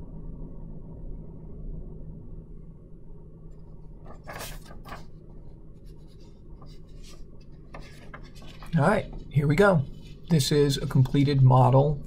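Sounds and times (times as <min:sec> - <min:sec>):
low steady hum: 0:00.0 - 0:12.0
paper rustling: 0:04.0 - 0:11.2.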